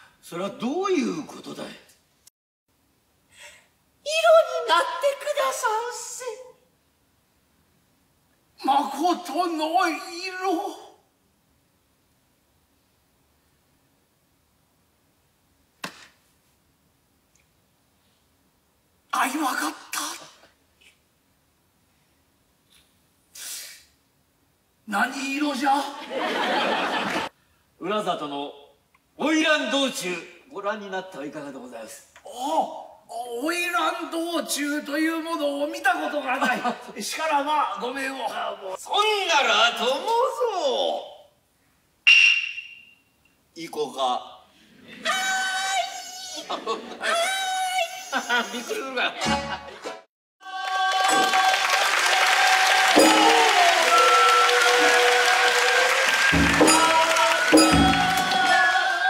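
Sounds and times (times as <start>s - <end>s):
sharp clack: 42.1s - 43.0s
sharp ringing strike: 42.1s - 43.0s, 56.4s - 58.4s.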